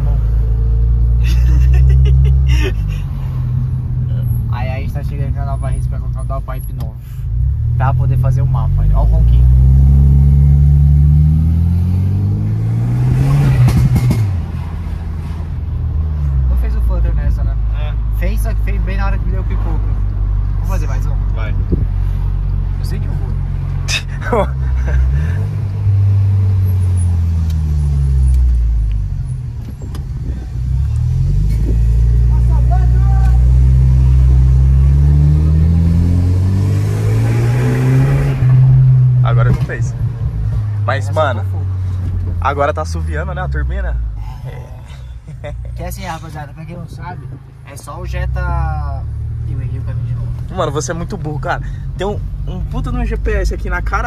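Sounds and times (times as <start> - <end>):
car engine accelerating: 0.0 - 54.0.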